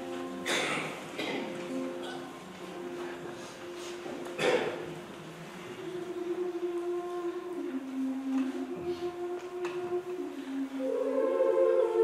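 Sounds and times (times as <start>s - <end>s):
person singing sustained notes: 5.6s - 12.0s.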